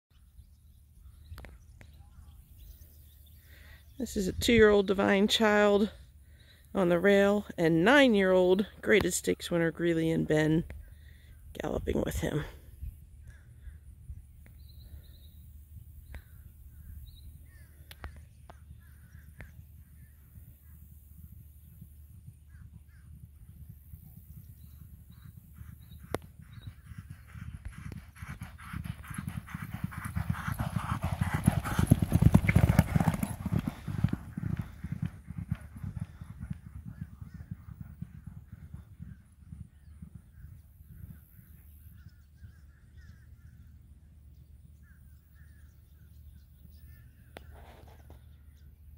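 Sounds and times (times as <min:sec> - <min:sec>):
horses galloping on dirt: 0:00.2 - 0:48.9.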